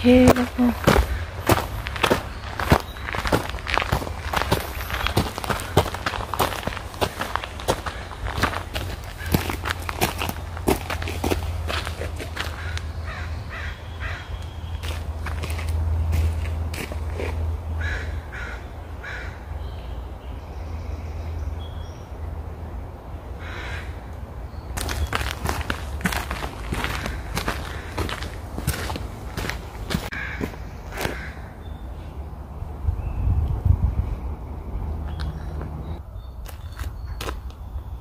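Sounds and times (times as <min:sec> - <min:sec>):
bird calling: 0:00.0 - 0:10.3, 0:12.3 - 0:15.0, 0:24.6 - 0:32.1
footsteps crunching on trail: 0:00.0 - 0:13.2, 0:14.1 - 0:17.5, 0:24.8 - 0:31.4, 0:36.4 - 0:37.5.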